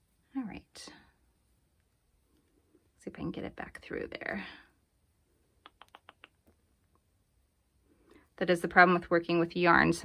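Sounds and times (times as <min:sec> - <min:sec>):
faint needle clicks: 0:05.5 - 0:07.1.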